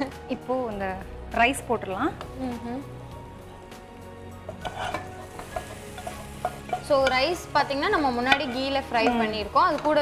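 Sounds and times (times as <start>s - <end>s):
faint background music: 0.0s - 10.0s
food sizzling in pot: 2.3s - 10.0s
spatula scraping frying pan: 4.4s - 7.3s.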